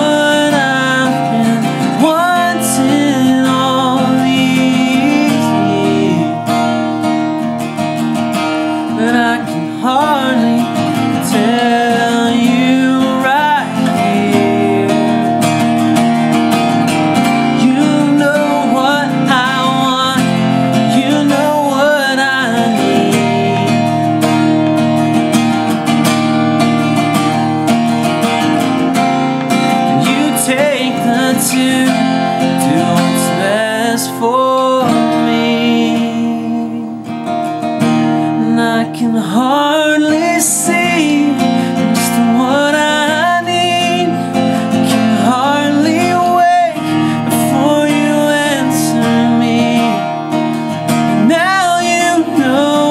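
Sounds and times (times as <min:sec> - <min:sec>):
man singing: 0:00.0 - 0:25.6, 0:28.1 - 0:52.9
acoustic guitar strumming: 0:00.0 - 0:52.9.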